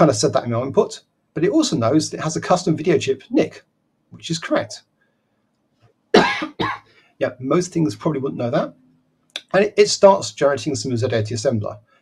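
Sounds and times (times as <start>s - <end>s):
man coughing: 6.2s - 6.9s.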